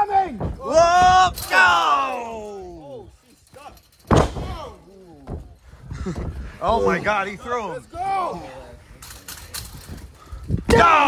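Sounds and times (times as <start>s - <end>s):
people shouting: 0.0s - 3.0s, 10.7s - 11.0s
body slamming down in a ring: 4.0s - 5.4s.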